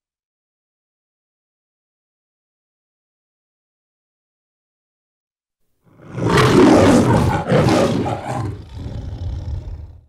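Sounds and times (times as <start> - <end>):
lion growling low: 5.9 - 10.0
lion roaring: 5.9 - 10.0.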